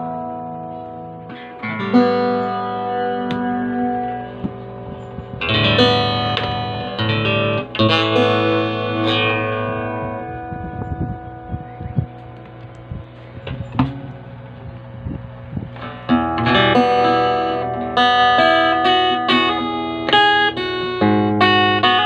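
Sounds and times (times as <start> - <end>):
fingerstyle acoustic guitar: 0.0 - 22.0.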